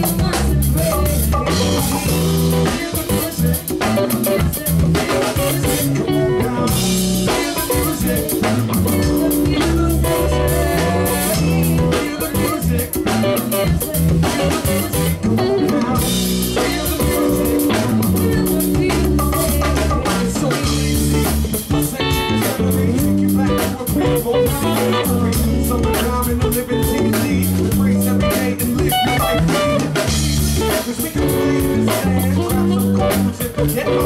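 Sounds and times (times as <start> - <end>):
drum kit: 0.0 - 34.0
electric guitar: 0.0 - 34.0.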